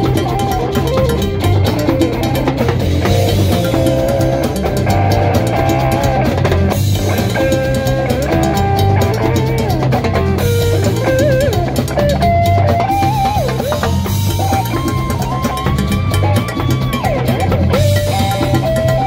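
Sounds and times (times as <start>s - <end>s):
bass: 0.0s - 19.0s
congas: 0.0s - 19.0s
drum kit: 0.0s - 19.0s
electric guitar solo: 0.0s - 19.0s.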